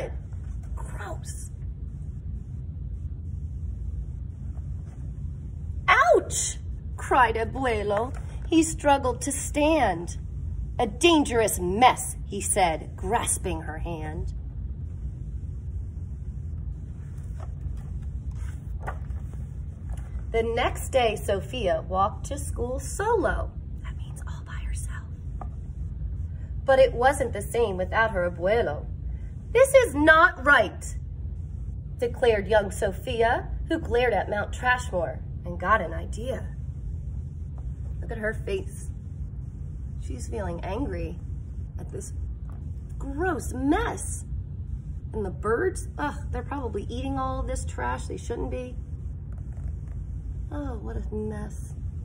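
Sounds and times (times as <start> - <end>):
steady low hum: 0.0 - 52.0
steady low rumble: 0.0 - 52.0
woman whispering: 23.8 - 25.4.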